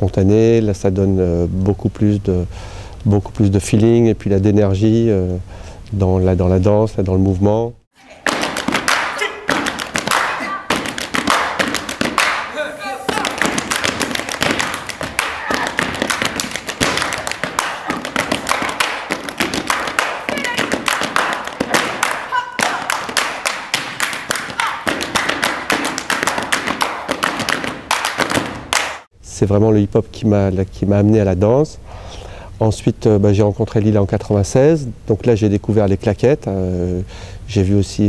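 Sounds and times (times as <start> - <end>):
tap shoes striking stage floor: 8.2 - 12.5, 13.1 - 29.0
hand claps: 8.2 - 29.1.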